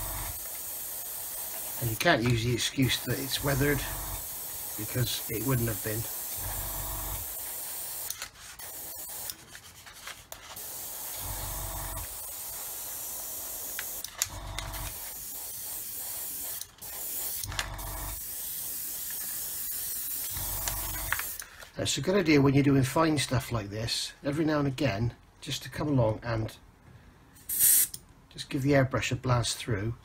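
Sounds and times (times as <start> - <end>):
airbrush spraying hiss: 0.0 - 9.4, 10.6 - 14.1, 14.7 - 21.4, 27.4 - 27.9.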